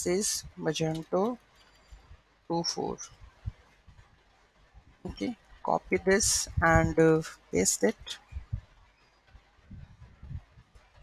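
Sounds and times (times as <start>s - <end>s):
soft low thump: 8.2s - 8.7s.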